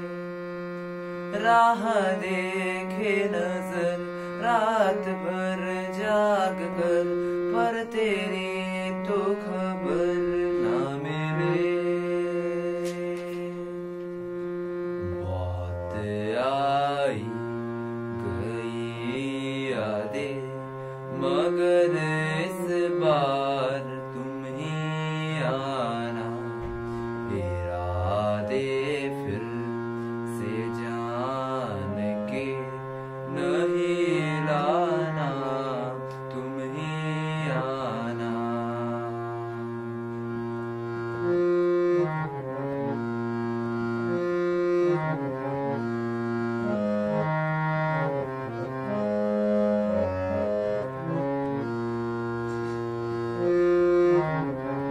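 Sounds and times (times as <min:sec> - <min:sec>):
harmonium chords: 0:00.0 - 0:54.9
man singing: 0:01.2 - 0:40.1.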